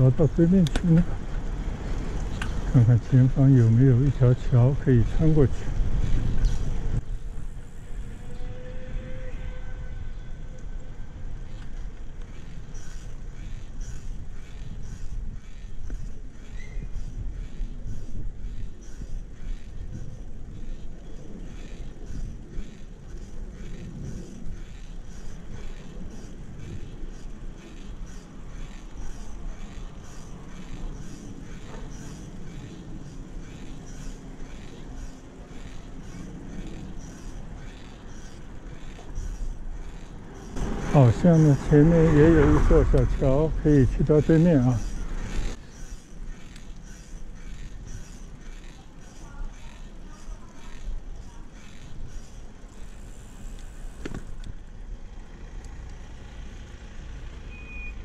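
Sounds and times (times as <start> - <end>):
wind buffeting microphone: 0.0 - 53.1
bicycle tyres rumbling on road: 0.0 - 58.0
faint regular ticking: 11.5 - 54.6.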